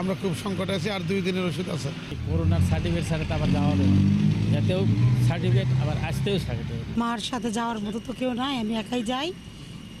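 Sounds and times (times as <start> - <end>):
man talking: 0.0 - 6.9
vehicle engine running low: 0.0 - 7.0.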